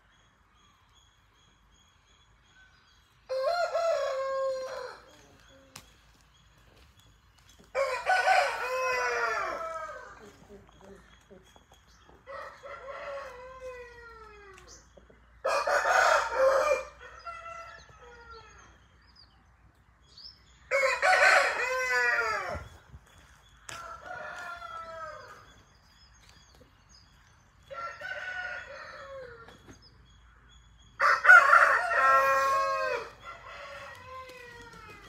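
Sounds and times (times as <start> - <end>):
roosters crowing: 3.3 - 5.4, 7.6 - 10.4, 12.2 - 18.8, 20.7 - 22.9, 23.6 - 25.6, 27.6 - 29.8, 30.9 - 35.0.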